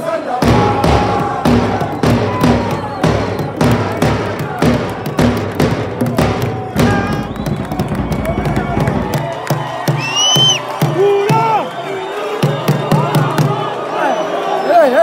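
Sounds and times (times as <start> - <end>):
football crowd chanting: 0.0 - 15.0
steady beat of sharp strikes: 0.4 - 11.4.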